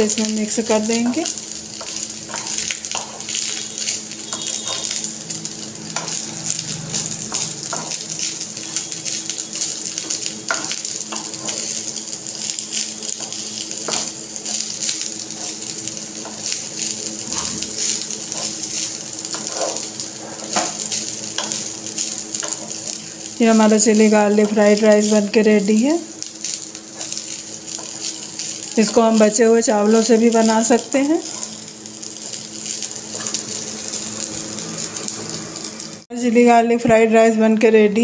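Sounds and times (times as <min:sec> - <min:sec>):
rice sizzling in a pan: 0:00.0 - 0:36.1
wooden spatula scraping a pan: 0:17.2 - 0:20.8.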